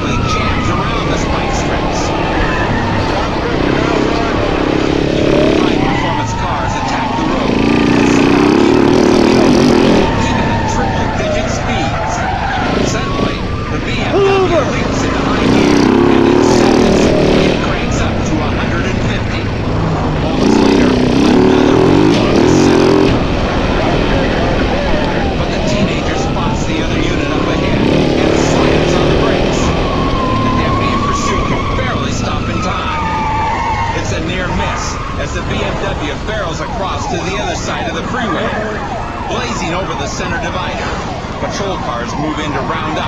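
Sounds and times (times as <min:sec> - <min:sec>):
police siren wailing: 0:00.0 - 0:43.0
vehicle engine running hard: 0:00.0 - 0:43.0.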